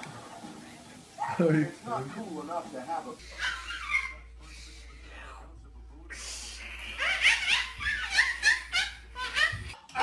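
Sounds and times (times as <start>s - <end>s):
baby laughing: 6.8s - 10.0s.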